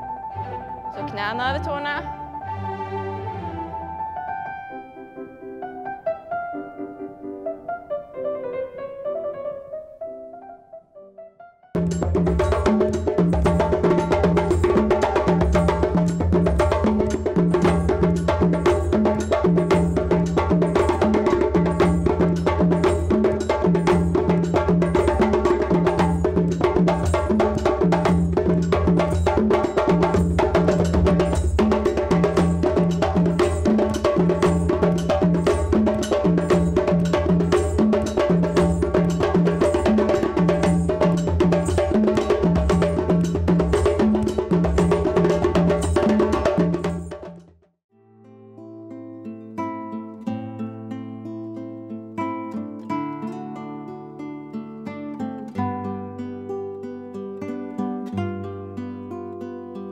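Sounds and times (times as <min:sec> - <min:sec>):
hand drums played fast: 0:11.8 - 0:47.6.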